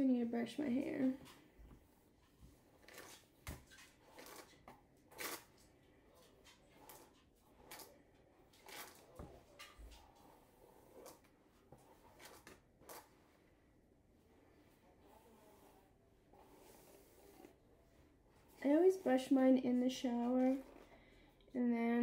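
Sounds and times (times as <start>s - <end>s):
hairbrush swishing through hair: 8.6s - 13.6s, 14.2s - 21.0s.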